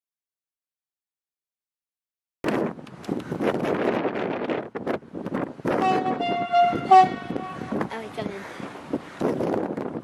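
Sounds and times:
steady rushing noise: 0:02.5 - 0:10.0
train horn: 0:05.8 - 0:07.8.

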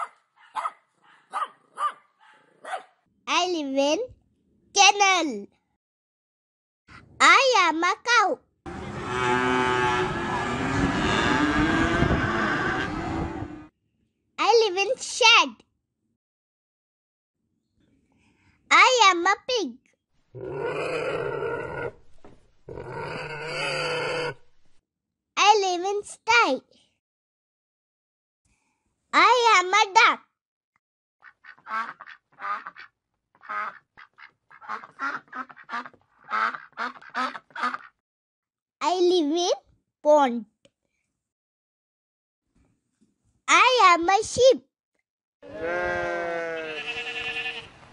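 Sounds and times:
cow mooing: 0:08.7 - 0:13.6, 0:45.4 - 0:47.7
duck quacking: 0:31.2 - 0:38.0.

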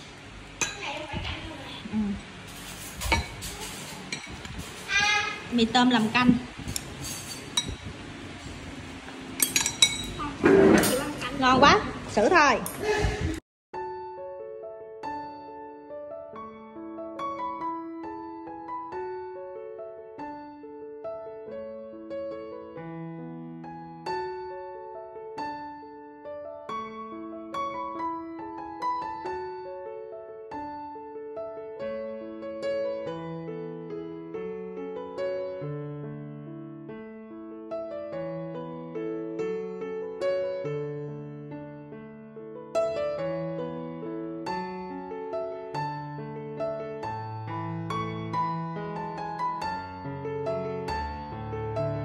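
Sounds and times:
slow piano melody: 0:00.0 - 0:52.0
tableware clinking on ceramic bowl: 0:00.6 - 0:00.8, 0:02.6 - 0:04.4, 0:06.8 - 0:07.8, 0:09.4 - 0:11.2.

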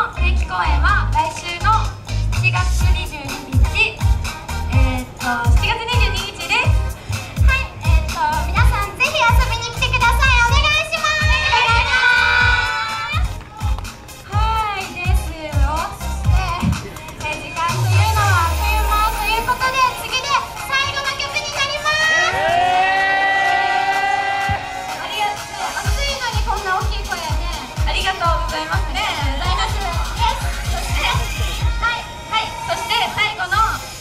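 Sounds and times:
music with kick-drum beat: 0:01.0 - 0:19.4, 0:24.4 - 0:31.8
woman talking into microphone: 0:14.3 - 0:22.4, 0:25.0 - 0:33.8.

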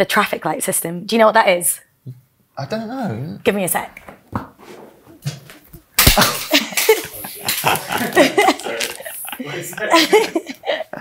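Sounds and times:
hearty human laughter: 0:06.4 - 0:11.0.

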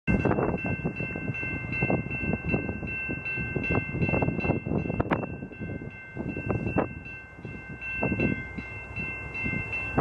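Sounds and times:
cars driving across tracks: 0:00.1 - 0:10.0
railway crossing bell ringing: 0:00.1 - 0:10.0.

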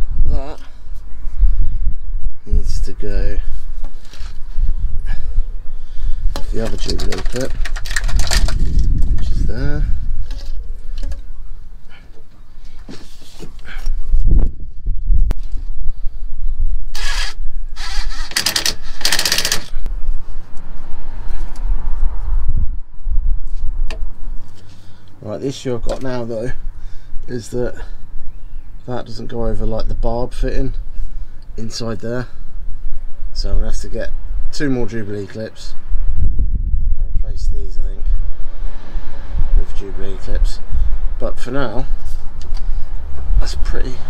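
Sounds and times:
steady low rumble: 0:00.0 - 0:12.9, 0:13.5 - 0:17.8, 0:19.7 - 0:44.0
rubber hose handling noises: 0:03.7 - 0:04.6, 0:06.3 - 0:11.3, 0:11.9 - 0:14.1
loud rustling bursts: 0:16.9 - 0:19.8.

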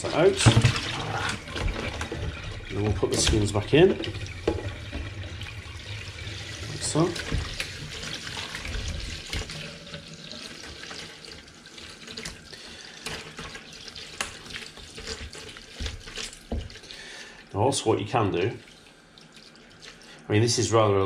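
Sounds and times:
tap running into water: 0:00.1 - 0:12.4, 0:13.0 - 0:17.0.

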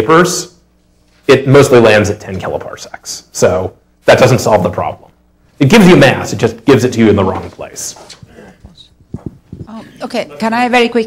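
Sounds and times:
faint murmuring: 0:07.9 - 0:10.5.

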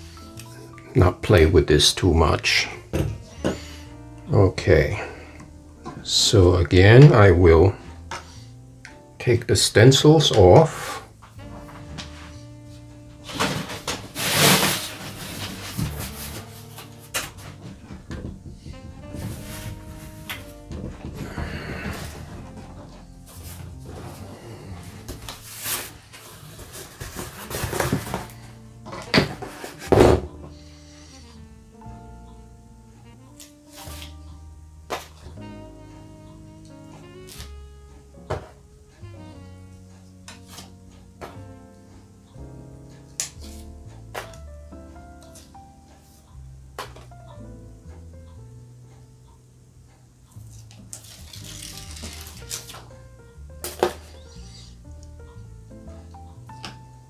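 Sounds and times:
soft instrumental music: 0:00.0 - 0:57.0
paper knocks and rustles: 0:13.2 - 0:24.2, 0:25.0 - 0:28.4.

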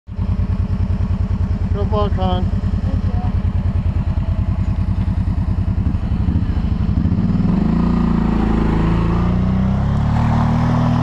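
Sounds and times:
quad bike engine idling: 0:00.1 - 0:11.0
person speaking: 0:01.7 - 0:03.4.

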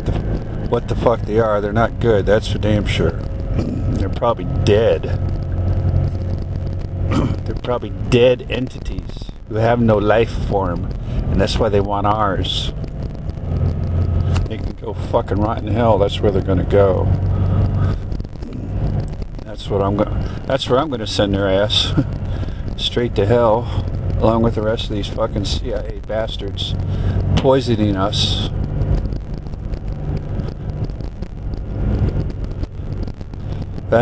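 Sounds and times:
car engine and road rumble: 0:00.0 - 0:34.0.

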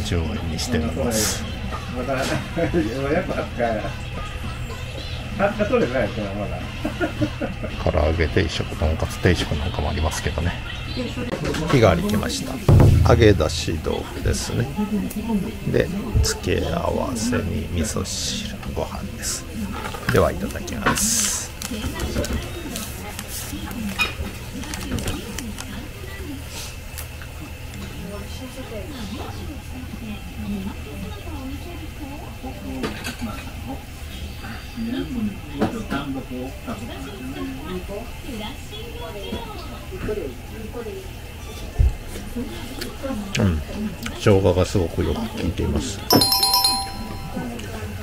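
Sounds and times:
quiet voices of customers: 0:00.0 - 0:48.0
shop door bell chime: 0:46.1 - 0:47.7.

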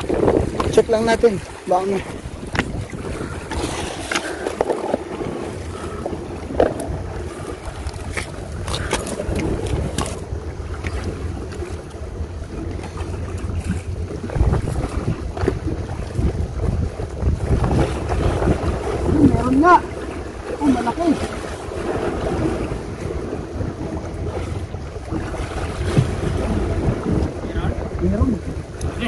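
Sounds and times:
sea waves against rocky shore: 0:00.0 - 0:29.0
wind buffeting microphone: 0:00.0 - 0:29.0.

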